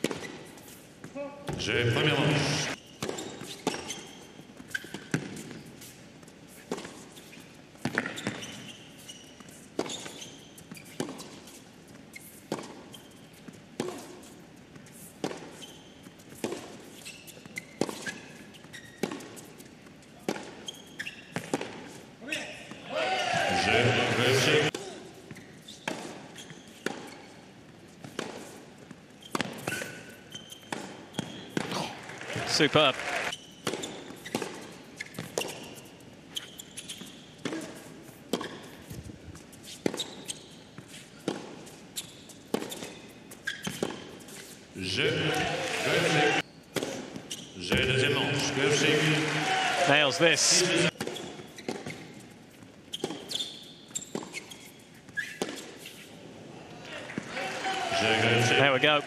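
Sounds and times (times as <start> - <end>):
crowd cheering and shouting: 22.8 - 24.7, 32.1 - 33.3, 44.9 - 46.4, 47.7 - 50.9, 57.0 - 59.0.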